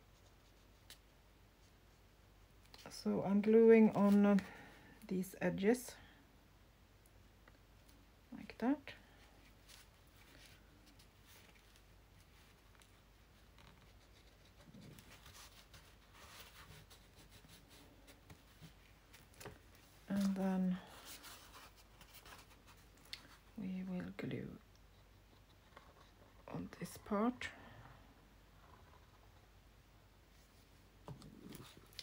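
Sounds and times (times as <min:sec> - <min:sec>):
hands rubbing paper: 0:09.4 - 0:19.4.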